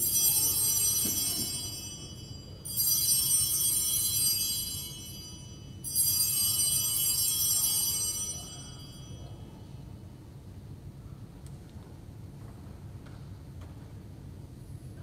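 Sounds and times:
altar bells jingling: 0.0 - 9.7.

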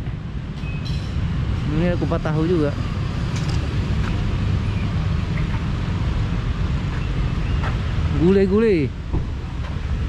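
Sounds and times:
motorbikes and cars passing: 0.0 - 10.0.

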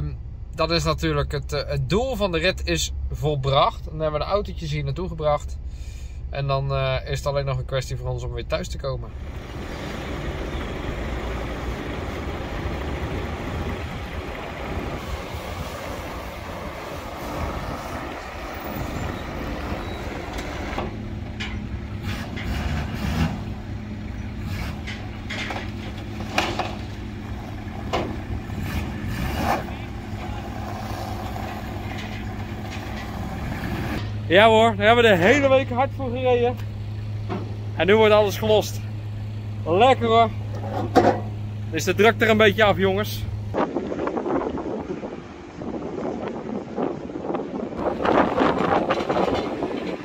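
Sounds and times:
vehicle engines idling: 0.0 - 50.0
steady rushing noise: 9.1 - 21.0
knocks and clunks on metal ramps: 19.3 - 23.6, 24.3 - 29.8, 31.2 - 34.2, 37.2 - 37.6, 40.6 - 41.4, 48.0 - 50.0.

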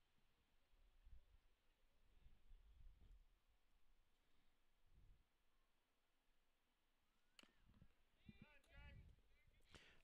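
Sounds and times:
faint sharp click: 7.3 - 7.6.

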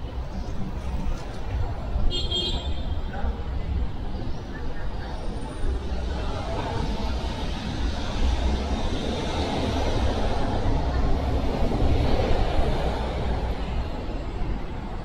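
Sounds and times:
street traffic rumble: 0.0 - 15.0.

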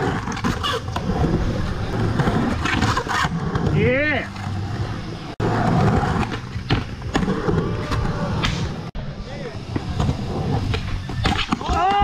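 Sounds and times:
skateboard trucks grinding: 0.0 - 12.0
person shouting: 11.6 - 12.0.

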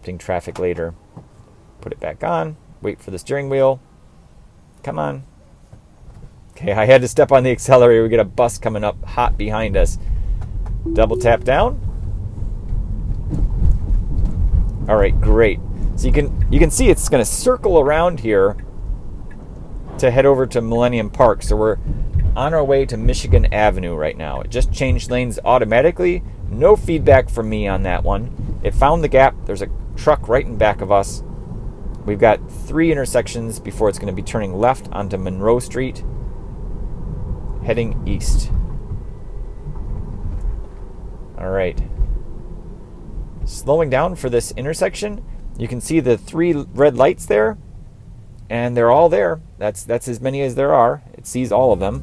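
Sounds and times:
road and tyre noise in car: 0.1 - 3.1, 3.8 - 52.0.

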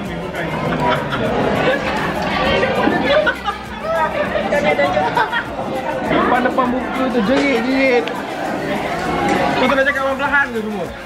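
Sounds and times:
dining room chatter: 0.0 - 11.0
people talking: 0.0 - 11.0.

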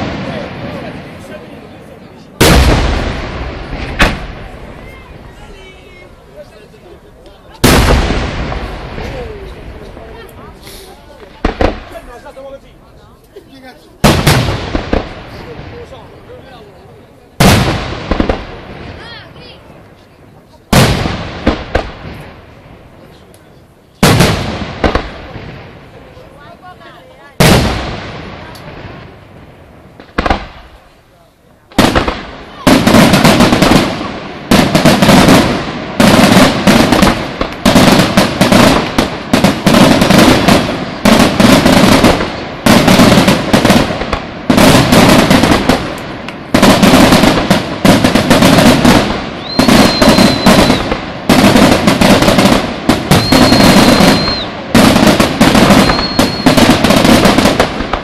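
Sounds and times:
fireworks bangs: 0.0 - 58.0
fireworks pops: 2.4 - 5.4, 7.2 - 12.4, 13.1 - 15.9, 17.4 - 19.1, 19.8 - 22.4, 23.0 - 25.6, 27.4 - 29.1, 29.9 - 31.0, 31.7 - 58.0.

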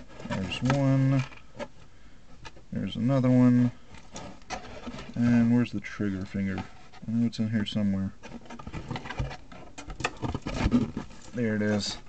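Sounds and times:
plastic parts clicking and rattling: 8.2 - 11.4.

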